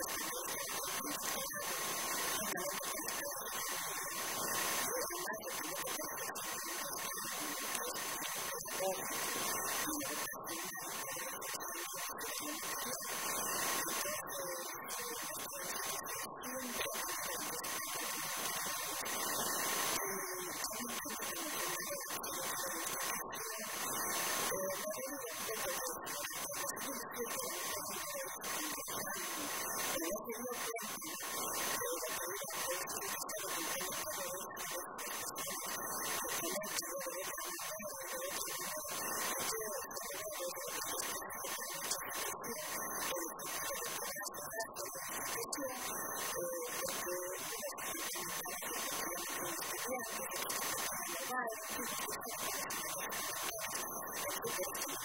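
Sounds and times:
steady hiss: 0.0s - 55.0s
thin steady whine: 0.0s - 55.0s
woman speaking into a microphone: 0.0s - 55.0s.

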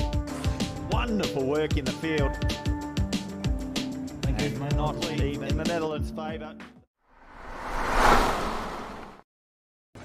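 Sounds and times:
whoosh sound effect: 7.2s - 9.2s.

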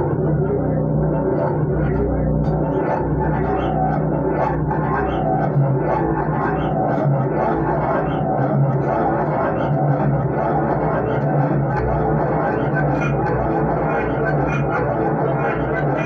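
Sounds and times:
droning guitar music through effects: 0.0s - 16.0s.

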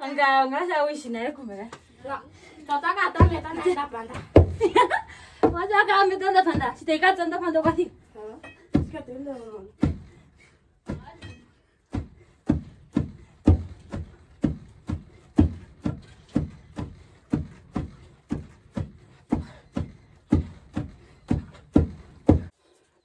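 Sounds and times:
wooden pestles pounding in mortar: 3.1s - 4.7s, 5.4s - 10.2s, 10.8s - 22.5s.

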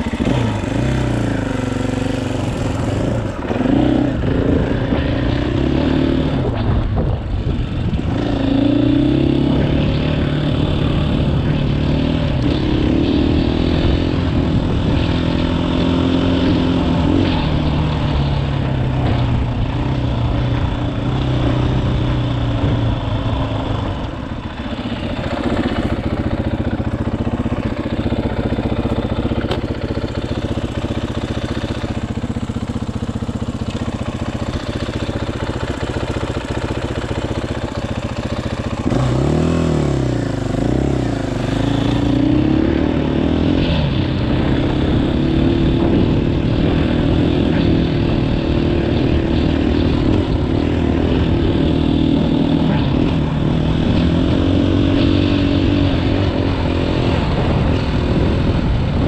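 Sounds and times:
motorcycle engine revving: 0.0s - 59.0s.

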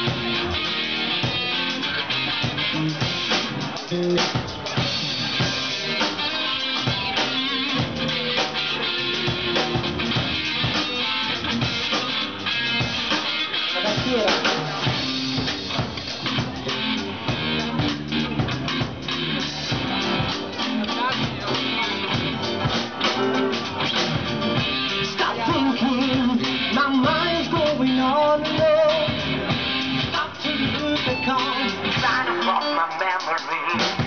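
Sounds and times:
bass guitar: 0.0s - 34.0s
drum kit: 0.0s - 34.0s
electric guitar: 0.0s - 34.0s.

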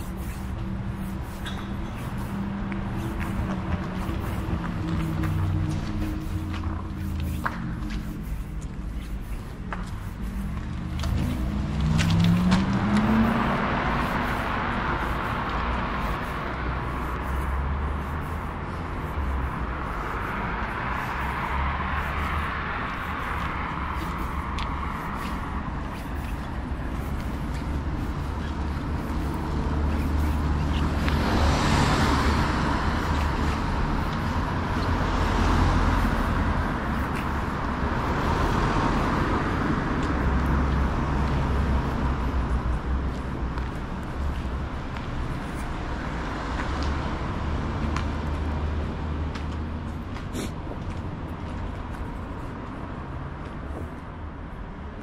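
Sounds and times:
cars passing on road: 0.0s - 55.0s
footsteps on pavement: 0.0s - 55.0s
car accelerating: 10.4s - 16.8s.

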